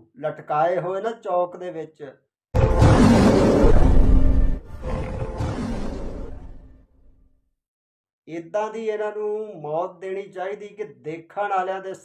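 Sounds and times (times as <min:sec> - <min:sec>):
dramatic music: 0:02.6 - 0:06.8
tiger roar: 0:04.8 - 0:06.4.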